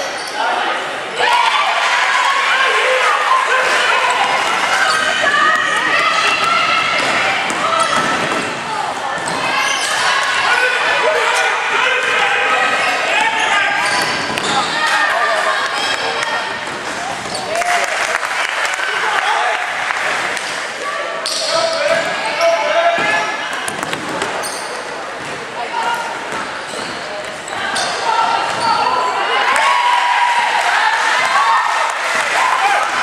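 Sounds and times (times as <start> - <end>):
voices calling out echoing: 0.0 - 33.0
ball bouncing on wooden court: 13.9 - 14.7.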